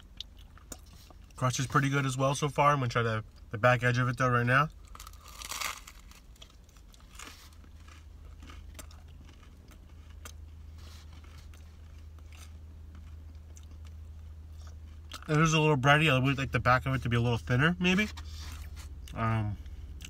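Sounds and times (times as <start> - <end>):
steady low hum: 0.0 - 20.0
pizza crust crunch: 4.2 - 19.6
chewing with small crackles: 6.0 - 15.4.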